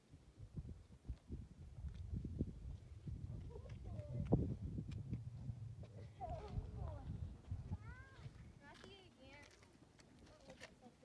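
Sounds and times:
wind rumbling on microphone: 0.1 - 8.8.

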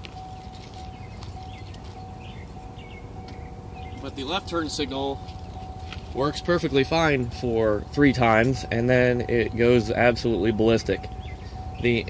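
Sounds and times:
footsteps on asphalt: 0.0 - 4.1, 5.2 - 6.8
steady low rumble: 0.0 - 12.0.

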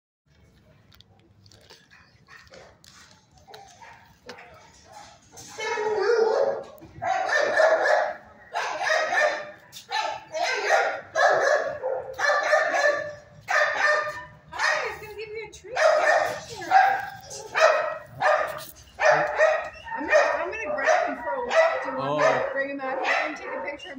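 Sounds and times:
dogs barking: 1.9 - 2.8, 3.4 - 15.0, 15.7 - 23.9.

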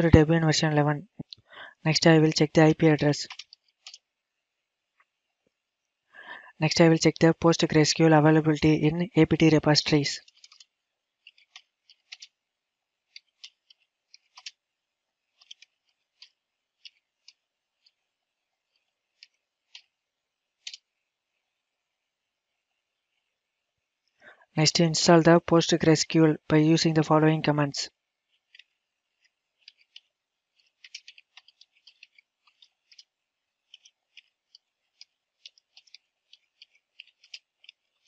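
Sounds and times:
computer keyboard keystrokes: 30.6 - 33.1.

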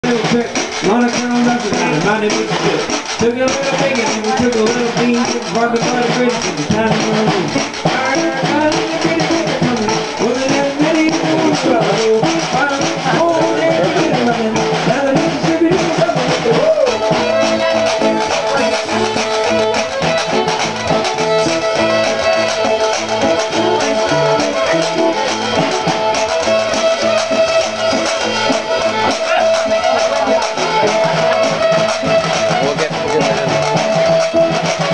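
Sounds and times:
small live band playing: 0.0 - 34.9.

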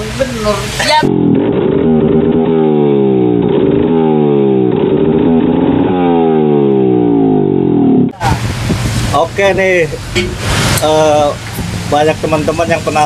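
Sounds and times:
scooter engine revving: 0.8 - 8.8.

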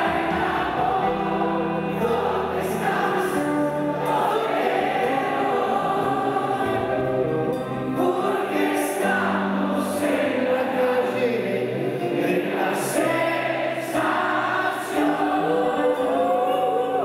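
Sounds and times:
rock band playing slow song: 0.0 - 15.4
men singing in harmony: 0.0 - 17.0.

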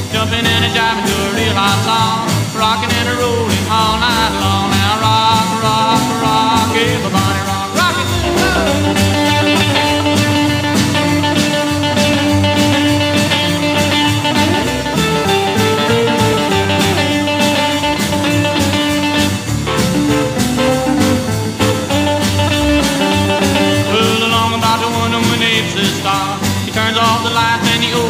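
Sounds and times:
rockabilly electric guitar and band: 0.0 - 28.0
steady drum beat: 0.0 - 28.0.

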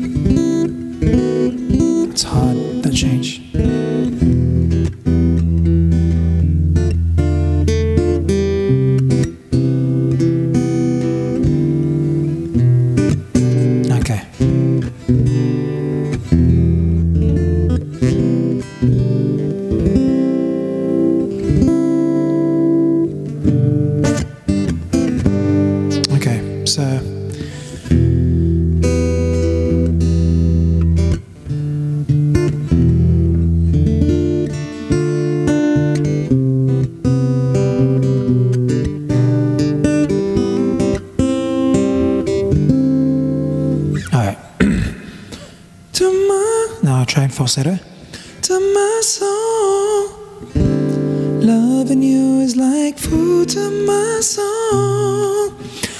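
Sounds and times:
acoustic guitar chords: 0.0 - 55.9.

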